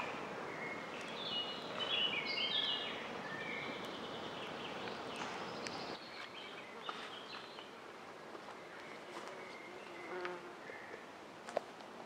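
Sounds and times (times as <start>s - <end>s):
quiet forest ambience: 0.0s - 12.0s.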